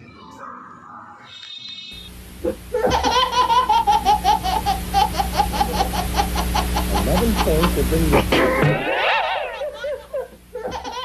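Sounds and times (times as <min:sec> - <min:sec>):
steady low hum: 0:00.0 - 0:11.0
baby laughing: 0:02.4 - 0:11.0.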